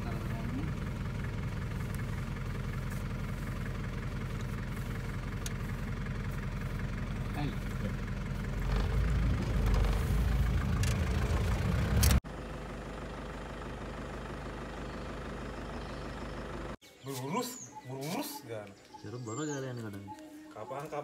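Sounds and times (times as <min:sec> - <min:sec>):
quiet engine drone: 0:00.0 - 0:16.8
vehicle engine idling: 0:00.0 - 0:16.8.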